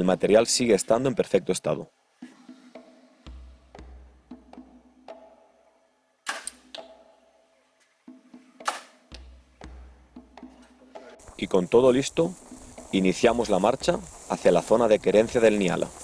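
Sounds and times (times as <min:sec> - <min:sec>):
bow string snap: 0:06.2 - 0:07.0, 0:08.6 - 0:09.3.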